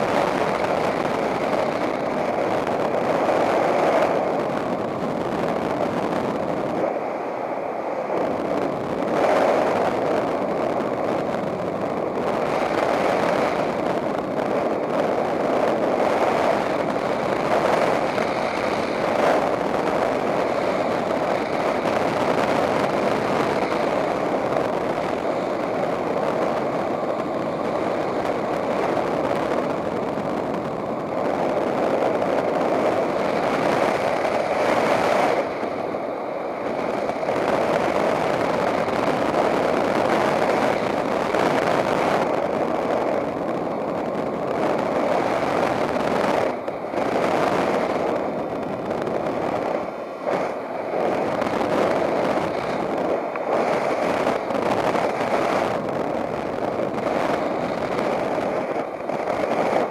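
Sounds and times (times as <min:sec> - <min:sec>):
wind rushing over microphone: 0:00.0 - 0:59.9.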